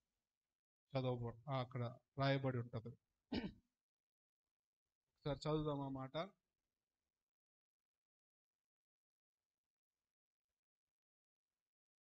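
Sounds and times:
man clearing throat: 3.3s - 3.6s.

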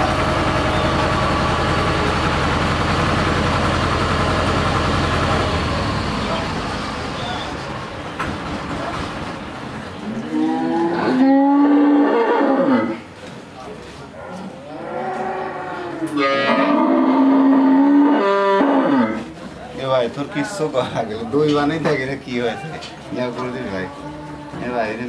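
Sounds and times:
cow mooing: 10.1s - 13.0s, 14.2s - 19.3s.

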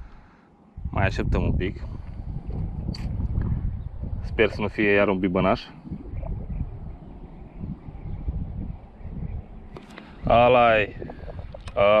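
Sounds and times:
wind buffeting microphone: 0.7s - 12.0s.

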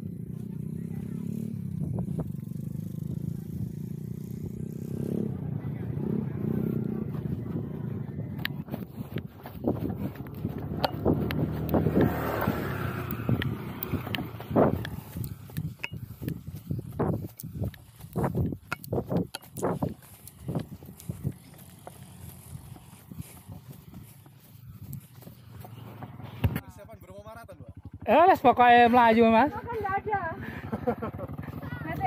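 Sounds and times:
wind rumbling on microphone: 0.9s - 26.5s
running footsteps on dirt road: 1.6s - 26.8s.

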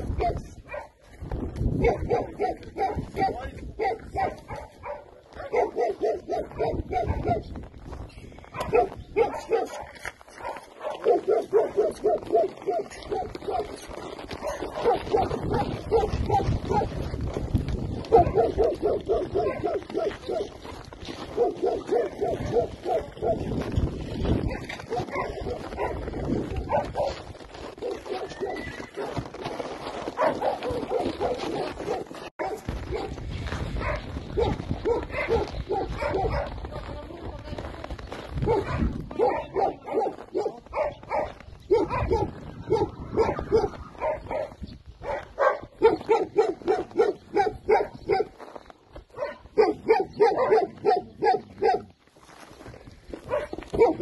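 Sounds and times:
wind rumble on microphone: 0.0s - 5.0s, 5.6s - 9.6s, 13.0s - 28.8s, 30.4s - 48.3s
dog barking: 0.2s - 1.0s, 1.8s - 7.5s, 8.6s - 13.8s, 14.4s - 17.0s, 18.1s - 20.6s, 21.3s - 23.5s, 24.9s - 26.0s, 26.6s - 27.2s, 27.8s - 29.2s, 30.2s - 33.2s, 33.8s - 36.6s, 38.4s - 48.4s, 49.1s - 51.9s, 53.2s - 54.0s.

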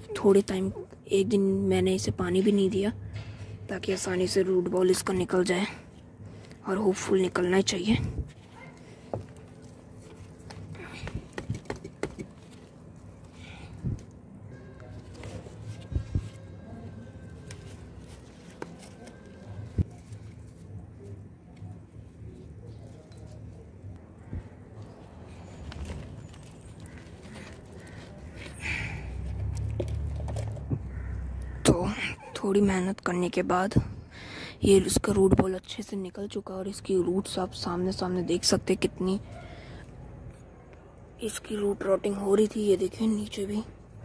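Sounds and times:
hands tapping plastic pot: 10.5s - 12.4s.

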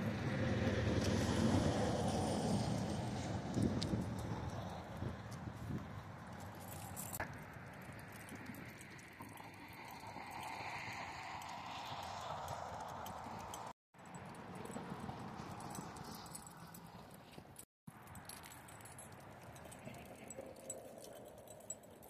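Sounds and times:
faint outdoor background: 0.0s - 22.0s.

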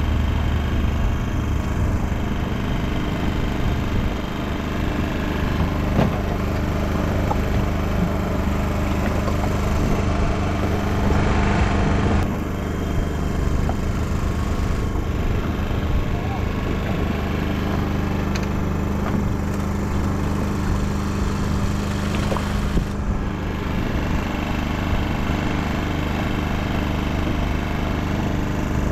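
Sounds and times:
small engine idling: 0.0s - 28.9s.

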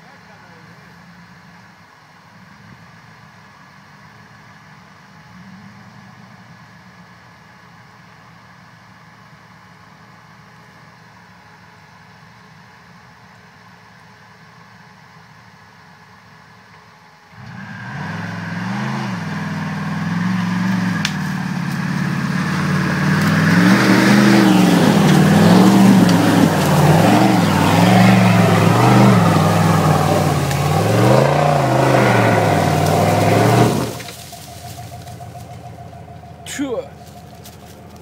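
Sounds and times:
engine revving hard: 17.4s - 35.5s
tyres spinning in mud: 19.3s - 38.0s.

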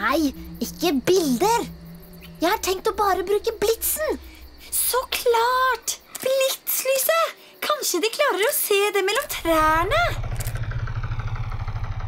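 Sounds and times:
faint engine whine: 0.0s - 6.1s, 9.2s - 12.0s
helicopter rotor chopping: 9.2s - 12.0s.

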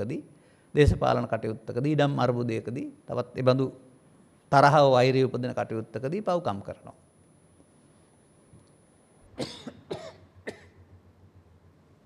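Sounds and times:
man coughing: 9.4s - 10.8s.

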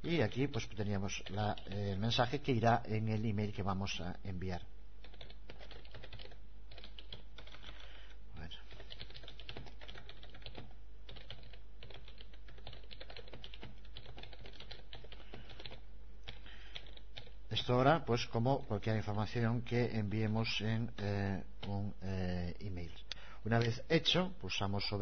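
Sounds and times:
typing on computer keyboard: 0.5s - 2.0s, 5.0s - 7.9s, 8.7s - 17.4s.

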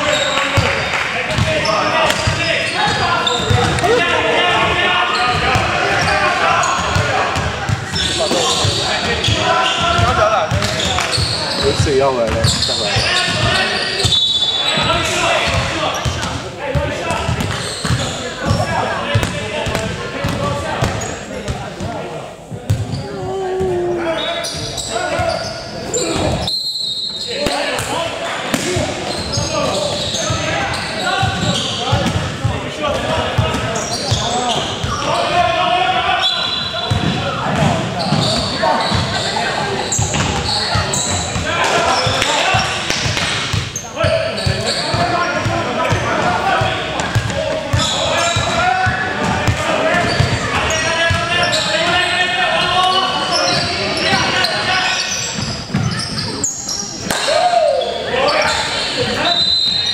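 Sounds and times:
players' voices and calls: 0.0s - 59.9s.

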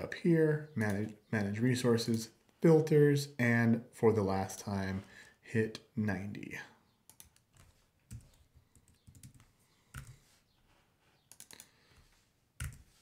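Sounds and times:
typing on computer keyboard: 7.1s - 10.2s, 11.3s - 11.7s, 12.6s - 12.8s.

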